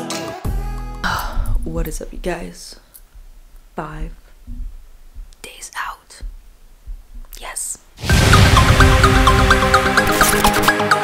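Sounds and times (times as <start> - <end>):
soft low bumps: 1.0 - 7.6
woman whispering: 5.4 - 6.3, 7.3 - 7.9.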